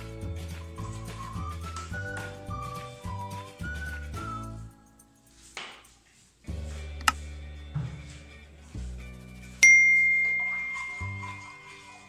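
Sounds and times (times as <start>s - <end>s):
background music: 0.0s - 12.0s
bright bell-like ding: 9.6s - 11.7s.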